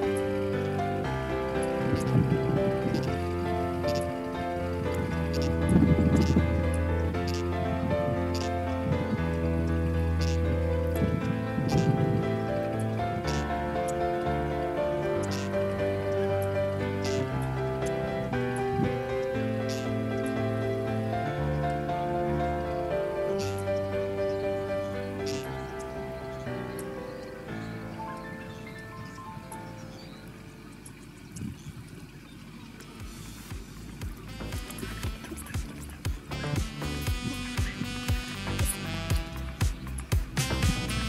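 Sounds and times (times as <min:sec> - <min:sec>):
slow music with held chords: 0:00.0 - 0:41.0
music with a steady beat: 0:33.0 - 0:41.0.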